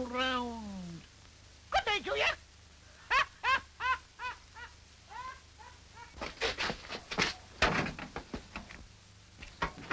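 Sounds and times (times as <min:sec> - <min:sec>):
high-pitched laughing: 0:03.0 - 0:06.2.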